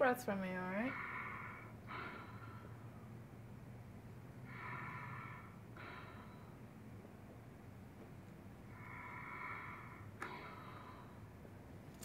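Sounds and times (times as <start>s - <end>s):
slow deep breathing: 0.8s - 11.8s.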